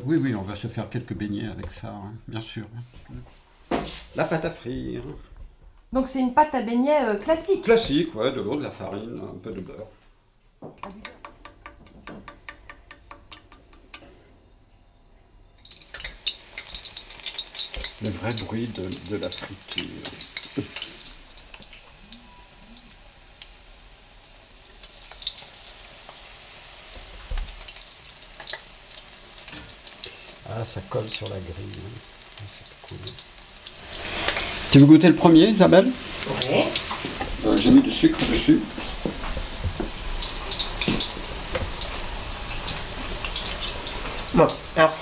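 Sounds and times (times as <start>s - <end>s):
batter deep-frying in hot oil: 15.6s - 45.0s
oil popping: 15.6s - 45.0s.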